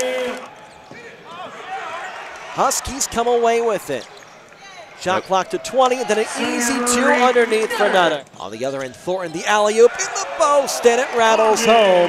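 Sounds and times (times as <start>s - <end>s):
faint basketball court noise: 0.0s - 12.0s
sportscaster speaking: 2.6s - 12.0s.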